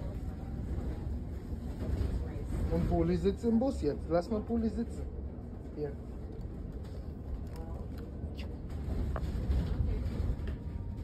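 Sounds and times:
bus engine rumble: 0:00.0 - 0:11.0.

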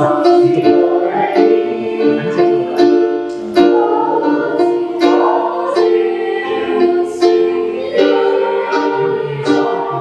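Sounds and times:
electronic keyboard accompaniment: 0:00.0 - 0:10.0
youth choir singing: 0:00.0 - 0:10.0.

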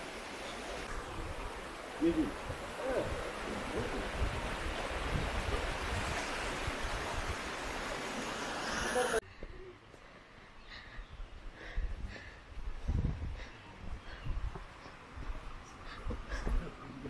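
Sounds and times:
forest stream rushing: 0:00.0 - 0:09.2.

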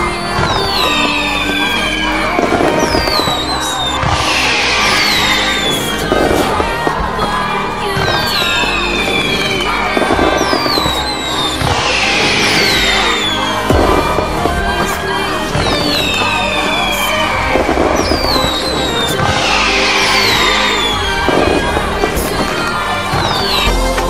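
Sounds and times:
firework crackling bursts: 0:00.0 - 0:24.0
firework whistles falling: 0:00.0 - 0:24.0
music track: 0:00.0 - 0:24.0.

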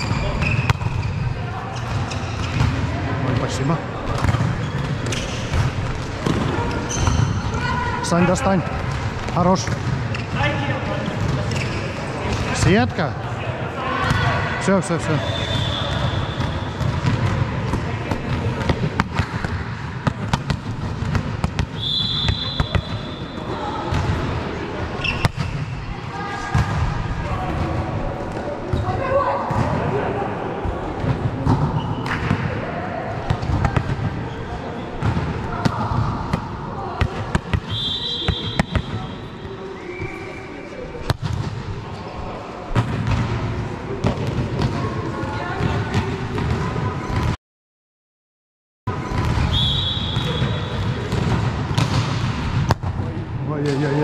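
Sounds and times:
players' voices: 0:00.0 - 0:47.4, 0:48.9 - 0:54.0.

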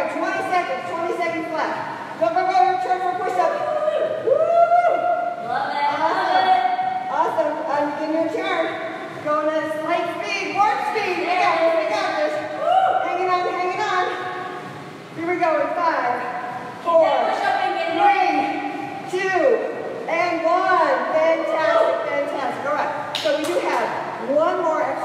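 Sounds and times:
woman speaking: 0:16.8 - 0:25.0.

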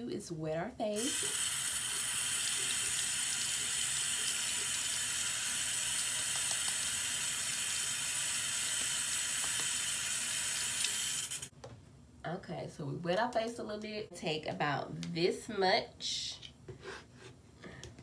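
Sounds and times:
water running from tap: 0:01.0 - 0:11.5.

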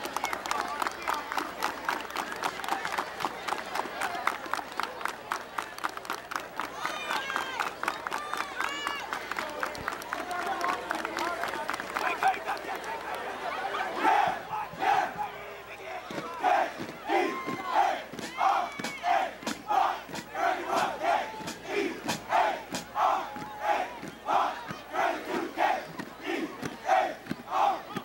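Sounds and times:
men shouting a chant: 0:13.9 - 0:15.5, 0:16.1 - 0:28.0.

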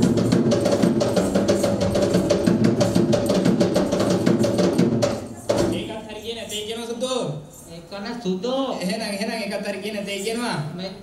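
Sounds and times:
fast hand drumming: 0:00.0 - 0:06.0.

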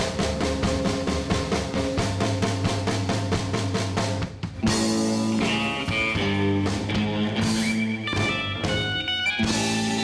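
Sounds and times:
drum kit: 0:00.0 - 0:10.0
electric guitar sustained notes: 0:04.7 - 0:10.0.

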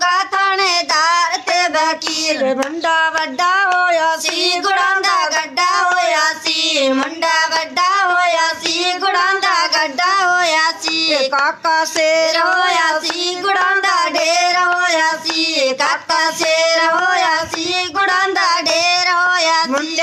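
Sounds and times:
girl singing unaccompanied: 0:00.0 - 0:20.0
hand claps: 0:00.0 - 0:20.0.

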